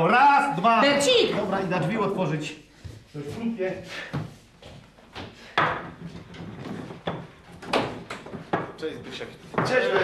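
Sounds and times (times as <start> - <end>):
knocks and thuds: 5.1 - 8.8.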